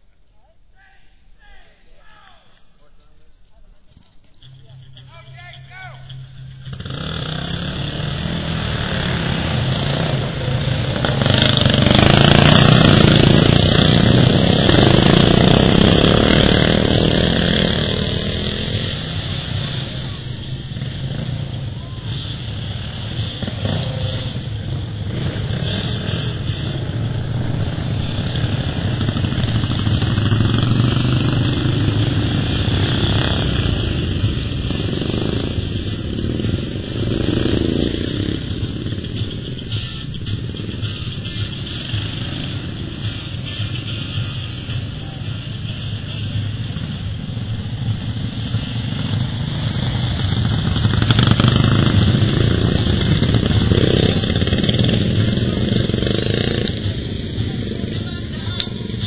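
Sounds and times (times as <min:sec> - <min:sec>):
racing lawn mower engines: 0:04.0 - 0:59.0.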